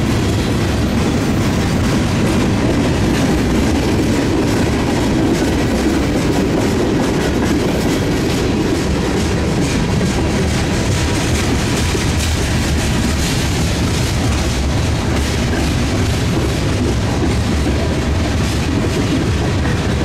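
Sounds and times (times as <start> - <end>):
steel wheels rolling on rail: 0.0 - 20.0
wheels clicking over rail joints: 0.0 - 20.0.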